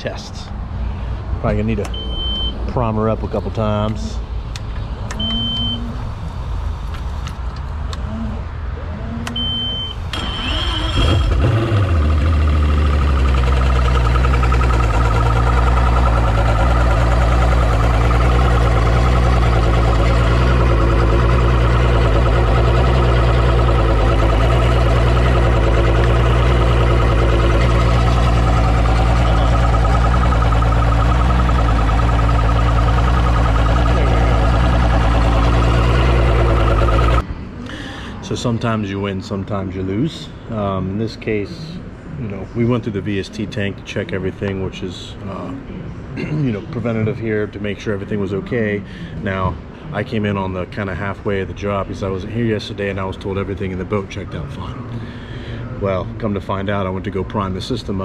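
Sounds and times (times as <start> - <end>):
short high beeps: 1.9 - 2.6, 5.2 - 5.9, 9.3 - 10.0
outboard motor idling: 10.2 - 37.2.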